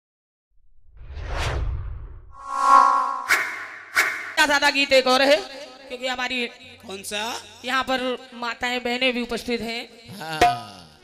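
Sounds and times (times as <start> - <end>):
whoosh: 0.8 - 4.8.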